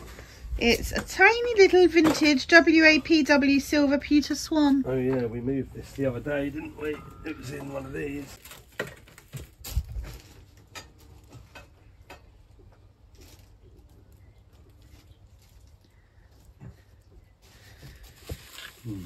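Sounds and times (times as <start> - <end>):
crockery knocking and clinking: 6.8 - 8.0.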